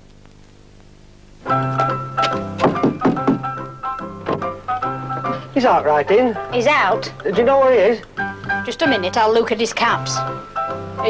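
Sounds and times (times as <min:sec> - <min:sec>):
background keyboard music: 0:01.4 - 0:11.0
knocking on front door: 0:02.2 - 0:04.6.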